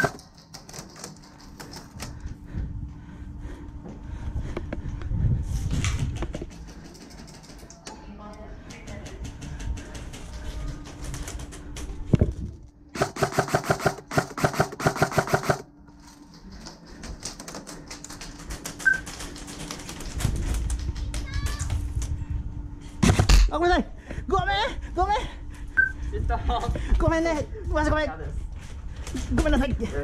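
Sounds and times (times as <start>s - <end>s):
airsoft gun full-auto burst: 13.0s - 15.7s.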